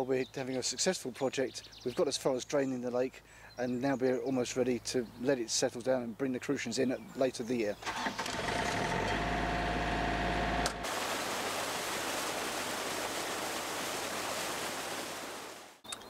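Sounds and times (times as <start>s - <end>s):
pump engine running: 7.9s - 12.7s
water rushing out of a hose: 10.6s - 15.8s.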